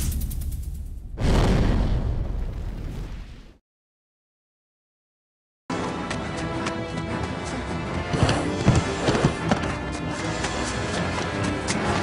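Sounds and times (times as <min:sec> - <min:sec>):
deep rumbling explosion: 0:00.0 - 0:03.6.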